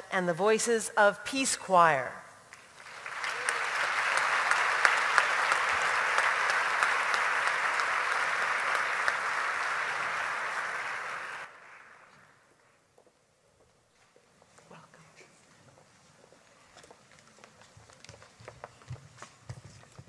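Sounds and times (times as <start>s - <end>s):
audience applauding: 2.5s - 12.4s.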